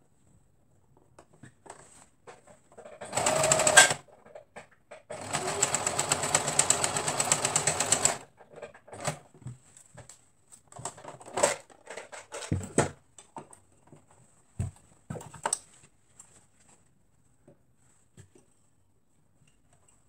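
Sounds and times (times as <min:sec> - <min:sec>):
electric sewing machine stitching: 0:03.0 - 0:04.0, 0:05.1 - 0:08.3.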